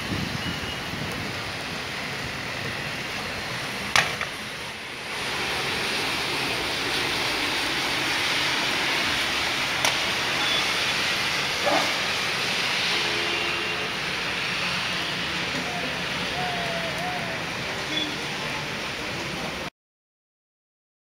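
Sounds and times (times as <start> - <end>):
heavy rain: 0.0 - 19.7.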